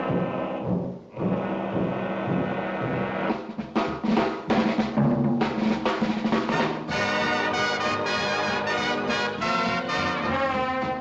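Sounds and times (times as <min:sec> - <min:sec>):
orchestral music: 0:06.5 - 0:11.0.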